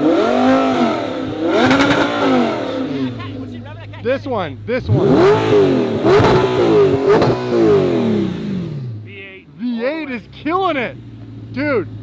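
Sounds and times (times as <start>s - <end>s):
car engine revving: 0.0s - 12.0s
exhaust crack: 0.0s - 12.0s.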